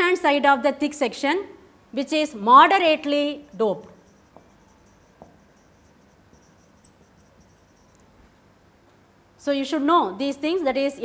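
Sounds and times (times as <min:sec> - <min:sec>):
marker scratching on whiteboard: 0:03.5 - 0:08.0.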